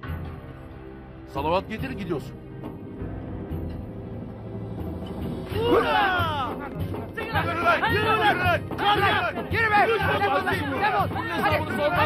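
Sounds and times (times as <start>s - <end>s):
background music: 0.0s - 12.0s
men shouting and yelling: 5.4s - 12.0s.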